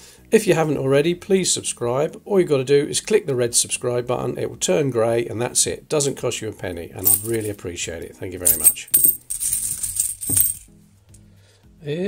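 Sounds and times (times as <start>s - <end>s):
coins jingling in cloth bag: 7.0s - 7.6s, 8.4s - 10.6s.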